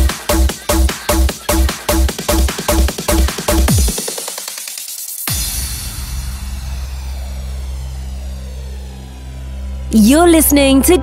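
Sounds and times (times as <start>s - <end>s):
low synth bass drone: 5.7s - 11.0s.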